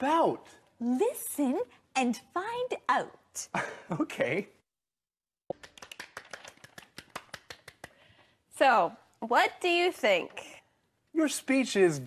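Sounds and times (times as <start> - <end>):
light claps: 5.5 - 8.0.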